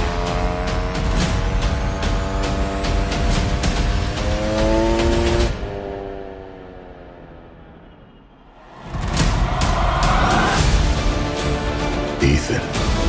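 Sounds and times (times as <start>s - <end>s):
percussive trailer music: 0.0s - 5.6s, 8.6s - 13.0s
dirt bike engine revving: 0.0s - 6.0s.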